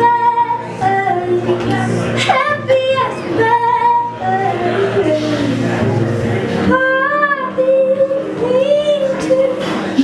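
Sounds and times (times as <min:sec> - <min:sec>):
woman singing: 0:00.0 - 0:05.9, 0:06.6 - 0:10.0
guitar: 0:00.0 - 0:10.0.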